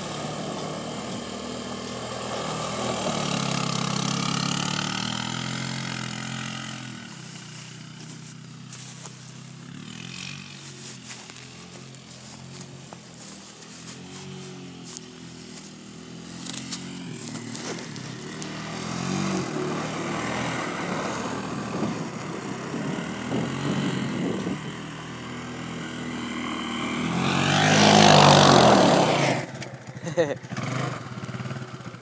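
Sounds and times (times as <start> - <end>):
quad bike engine running: 0.0 - 32.0.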